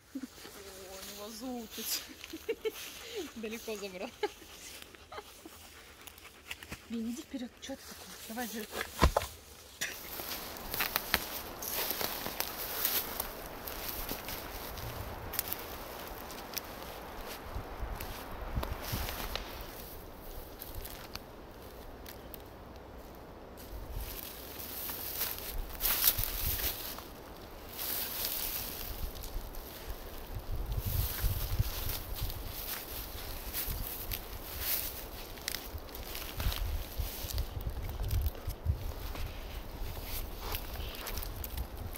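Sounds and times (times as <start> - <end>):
footsteps rustling through undergrowth: 0.0 - 41.9
small twig cracks: 10.0 - 13.3.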